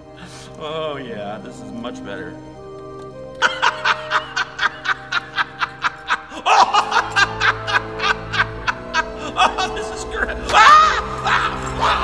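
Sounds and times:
background music: 0.0 - 12.0
man laughing hard: 3.4 - 12.0.

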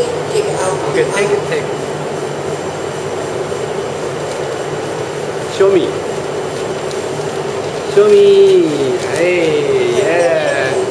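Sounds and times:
machinery humming with hiss: 0.0 - 10.9.

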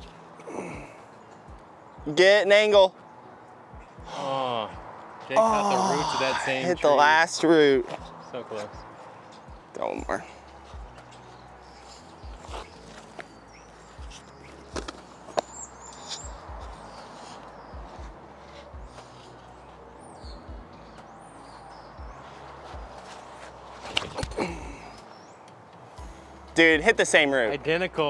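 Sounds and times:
small birds chirping: 7.7 - 27.3.

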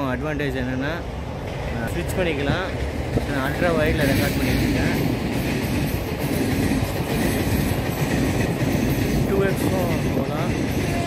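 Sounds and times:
train wheels rumbling on track: 0.0 - 11.0.

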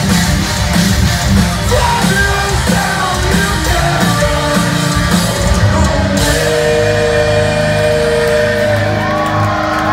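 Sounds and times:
distorted electric guitars and bass: 0.0 - 9.9.

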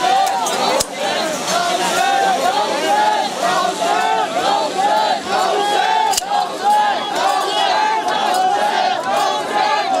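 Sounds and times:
crowd of men shouting rhythmically: 0.0 - 10.0.

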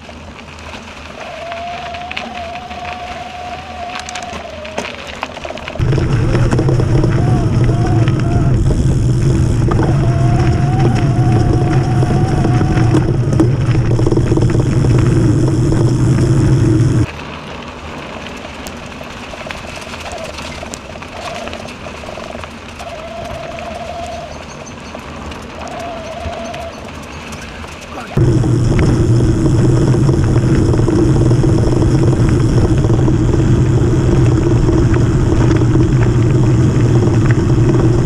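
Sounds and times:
bike tyres rumbling on dirt trail: 0.0 - 38.0
quiet rolling noise: 0.0 - 38.0
faint wavering hum: 5.5 - 17.1, 28.2 - 38.0.

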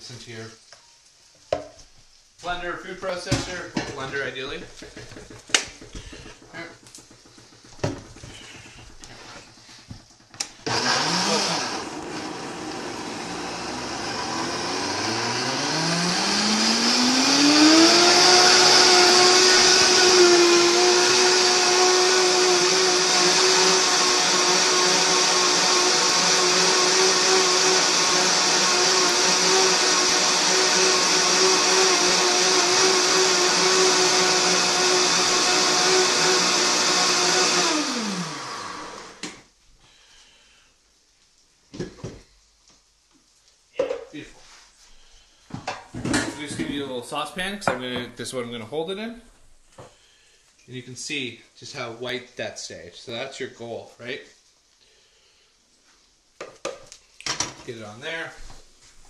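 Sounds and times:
blender motor whirring: 4.8 - 39.4.

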